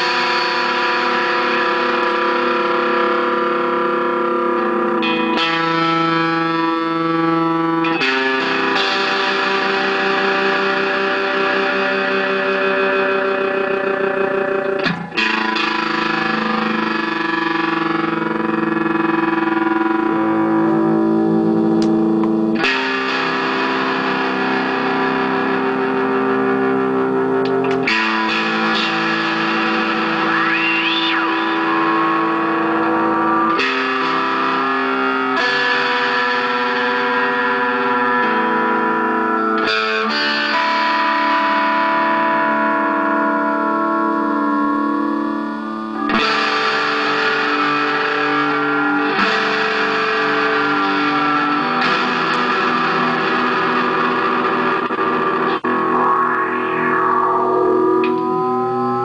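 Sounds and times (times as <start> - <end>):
electric guitar with ring modulator: 0.0 - 59.0.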